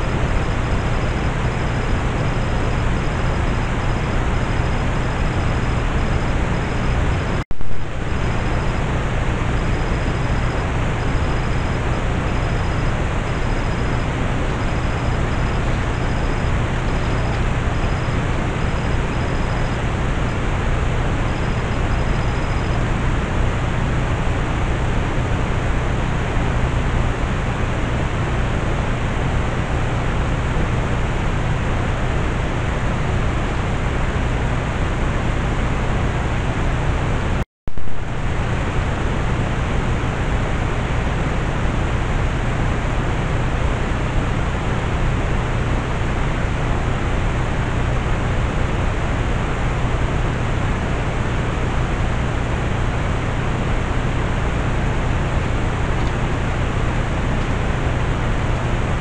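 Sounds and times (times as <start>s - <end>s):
loud hiss with low hum: 0.0s - 59.0s.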